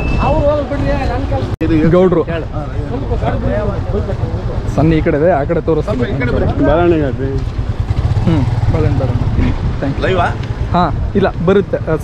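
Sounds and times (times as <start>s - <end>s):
man talking: 8.3s - 12.0s.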